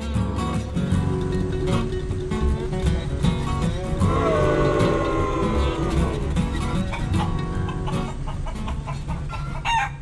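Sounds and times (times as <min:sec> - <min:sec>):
low steady hum: 0:00.6 - 0:10.0
loud crowing call: 0:04.0 - 0:08.0
chicken clucking: 0:04.1 - 0:10.0.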